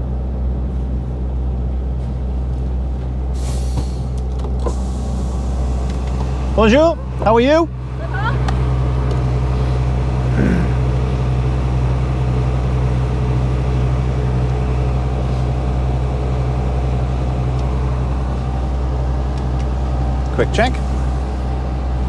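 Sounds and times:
truck diesel engine idling: 0.0s - 22.0s.

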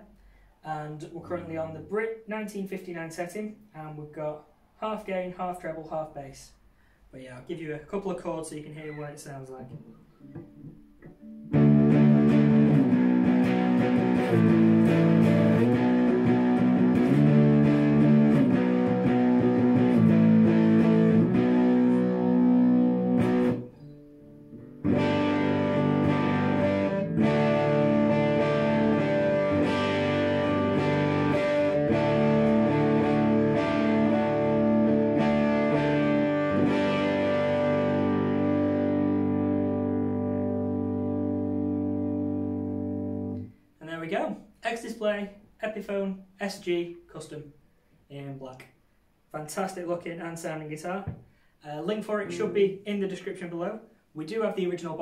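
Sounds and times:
overdriven electric guitar chords: 9.8s - 43.6s, 52.2s - 52.7s.

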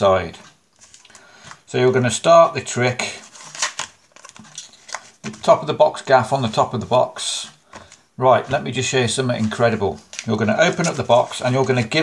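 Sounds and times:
playing cards rustling: 0.4s - 12.0s.

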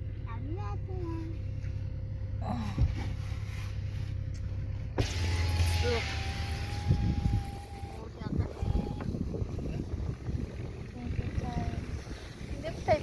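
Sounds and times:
engine idling hum: 0.0s - 13.0s
outside noise: 0.0s - 13.0s
power window motor whine: 4.9s - 9.6s.

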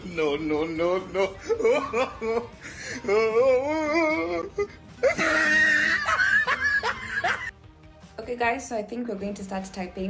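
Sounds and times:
woman laughing nervously: 5.0s - 7.5s.

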